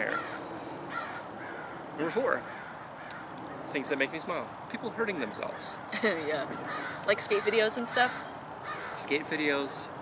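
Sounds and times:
faint bird calls: 0:00.0 - 0:03.8, 0:05.7 - 0:09.2
outdoor background noise: 0:00.0 - 0:10.0.

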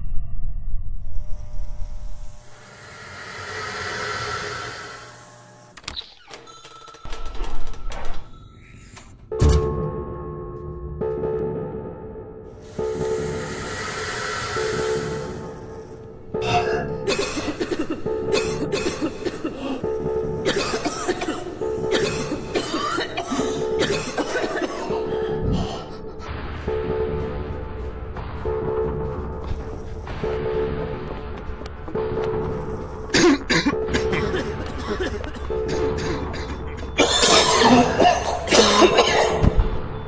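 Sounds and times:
background music with held note: 0:09.3 - 0:40.0
person coughing repeatedly: 0:16.4 - 0:19.8, 0:20.4 - 0:26.2, 0:33.1 - 0:39.6.

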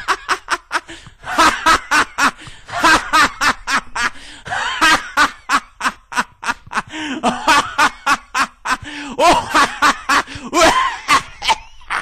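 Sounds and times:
person laughing hard: 0:00.0 - 0:12.0.

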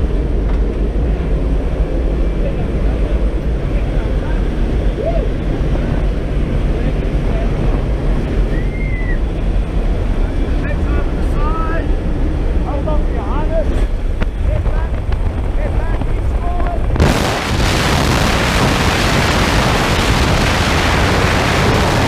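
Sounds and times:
loud rush of wind on microphone: 0:00.0 - 0:22.0
plane engine drone: 0:00.0 - 0:22.0
wind noise in cabin: 0:00.0 - 0:22.0.

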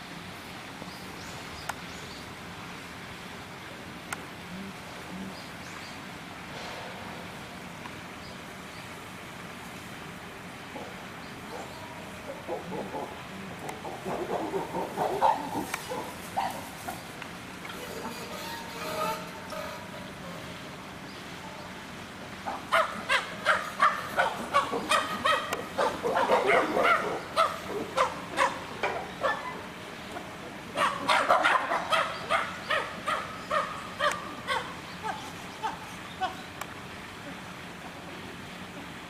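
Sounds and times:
chimpanzees calling: 0:10.8 - 0:17.1, 0:22.4 - 0:36.6.

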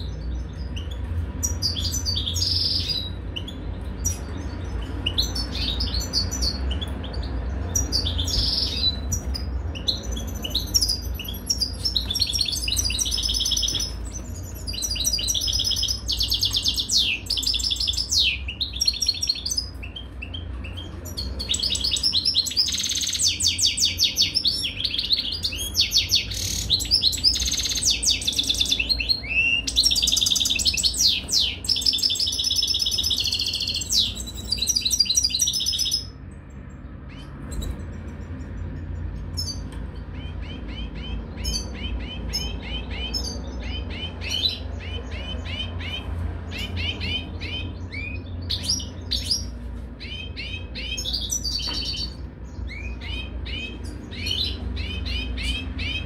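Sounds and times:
finch twittering song: 0:00.0 - 0:56.0.

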